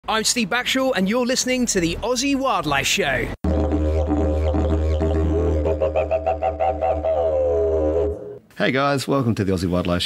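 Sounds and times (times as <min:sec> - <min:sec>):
didgeridoo drone: 0:03.4 - 0:08.4.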